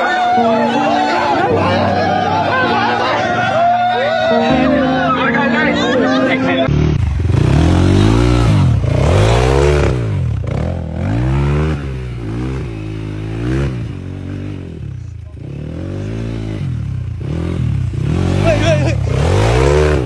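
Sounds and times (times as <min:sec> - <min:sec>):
music: 0:00.0 - 0:06.7
dirt bike engine revving: 0:06.6 - 0:20.0.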